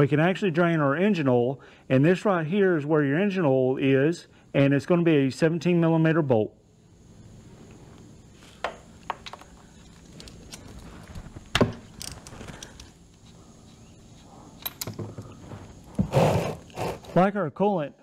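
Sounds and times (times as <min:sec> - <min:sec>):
steady low hum: 0:00.0 - 0:18.0
rustling: 0:09.3 - 0:17.2.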